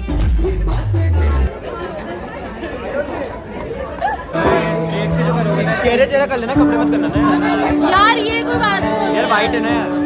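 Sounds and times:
chatter of many people: 0.0 - 10.0.

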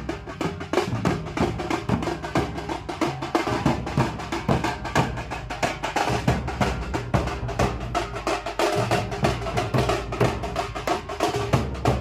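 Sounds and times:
barrel drums beaten with sticks: 0.0 - 12.0.

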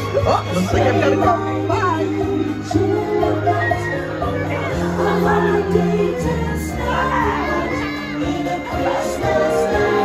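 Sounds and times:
crowd voices: 0.0 - 10.0
parade music over loudspeakers: 0.0 - 10.0
children shouting: 3.2 - 10.0.

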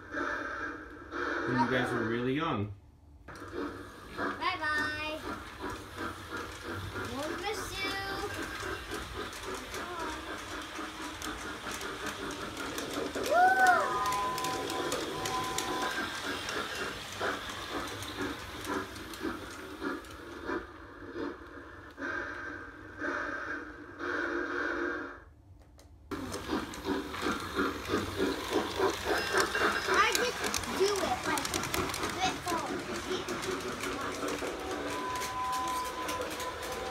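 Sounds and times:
toy train clattering on track: 3.3 - 20.7, 26.1 - 36.9
children's voices: 7.1 - 8.4, 29.8 - 34.3
toy train whistle: 13.2 - 17.0, 33.9 - 36.9.

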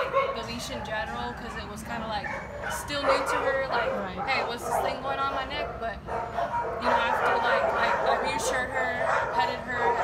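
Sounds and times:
dogs barking and yipping: 0.0 - 10.0.

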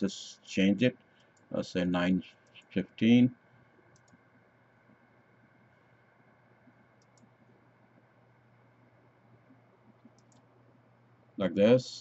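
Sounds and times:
low steady hum: 0.0 - 12.0
computer mouse clicks: 3.9 - 4.3, 6.6 - 7.6, 9.8 - 10.6.

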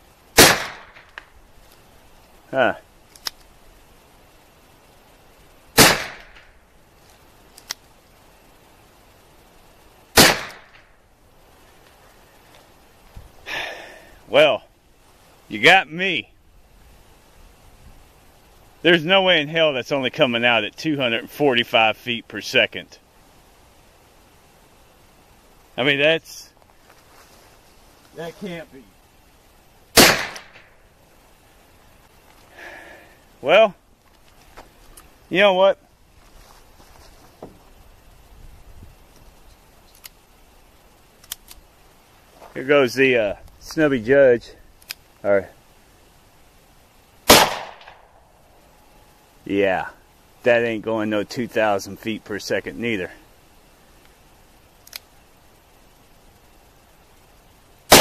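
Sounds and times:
gunshots with echo: 0.4 - 1.0, 30.0 - 30.5, 47.3 - 48.0
revolver gunshot: 0.4 - 1.1, 5.8 - 6.5, 10.2 - 10.9, 30.0 - 30.7, 47.3 - 48.1
faint click: 3.1 - 3.5, 39.1 - 40.2, 41.2 - 41.6, 44.8 - 45.1, 54.0 - 54.2, 54.8 - 55.1.

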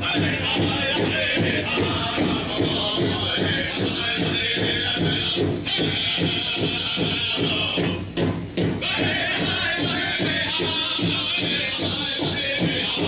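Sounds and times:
big drum beaten evenly: 0.0 - 13.0
high voices singing: 0.0 - 13.0.

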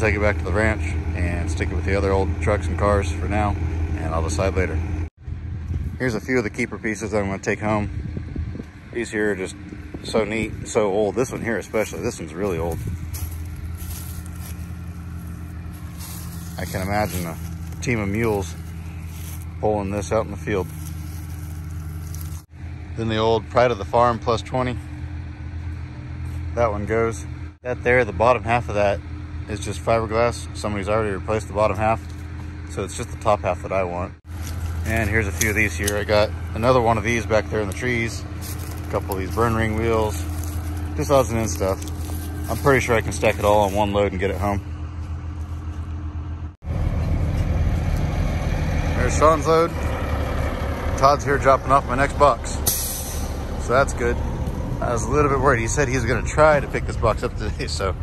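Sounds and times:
engine idling: 0.0 - 58.0.

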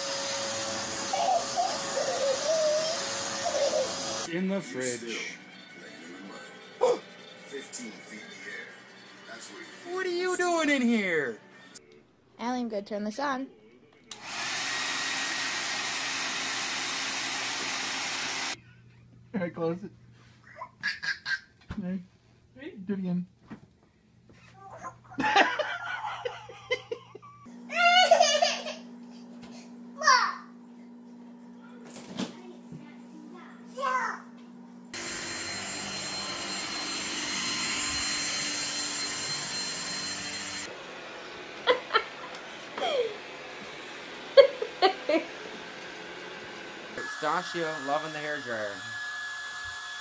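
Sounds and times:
vacuum cleaner running: 0.0 - 5.4, 14.1 - 18.6, 34.8 - 50.0
baby's voice: 1.1 - 4.0, 24.5 - 25.1
toddler squealing laugh: 1.1 - 4.1, 20.5 - 21.6, 27.7 - 28.8
adult laughing: 25.1 - 28.8, 41.6 - 43.2, 44.4 - 45.4.

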